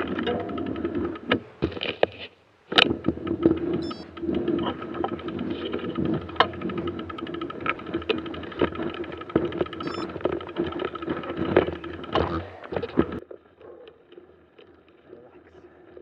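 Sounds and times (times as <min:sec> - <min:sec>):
bike clicks and knocks: 0:00.0 - 0:15.0
steady hum: 0:00.0 - 0:16.0.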